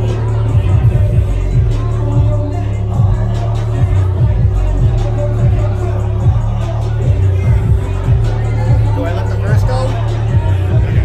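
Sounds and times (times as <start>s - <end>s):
bass-heavy electronic dance music: 0.0s - 11.0s
man talking into microphone: 8.9s - 10.0s.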